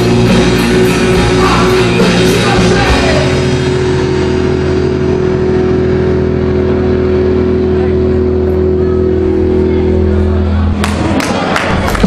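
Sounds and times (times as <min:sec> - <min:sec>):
electric guitar and bass chord ringing: 0:00.0 - 0:12.0.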